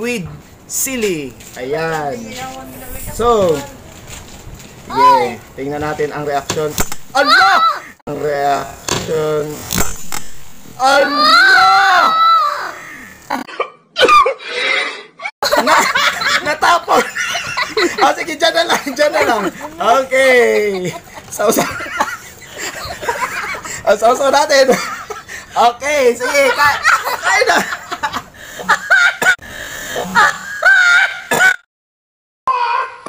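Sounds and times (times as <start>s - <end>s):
high drawn-out cry: 7.1s - 8.0s, 10.8s - 13.4s, 30.2s - 31.4s, 32.5s - 33.0s
girl laughing: 7.2s - 8.0s, 15.4s - 23.8s, 26.3s - 29.4s, 30.0s - 31.5s
people laughing: 15.4s - 31.4s.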